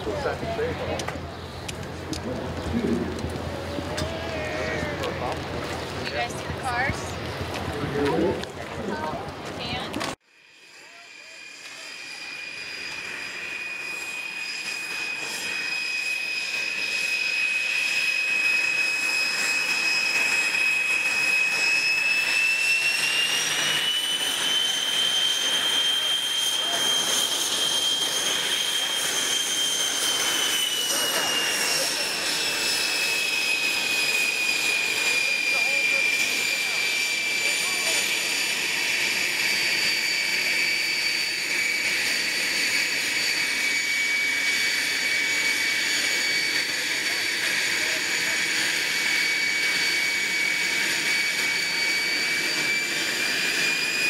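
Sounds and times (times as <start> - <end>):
jet engine whining: 0.0 - 54.0.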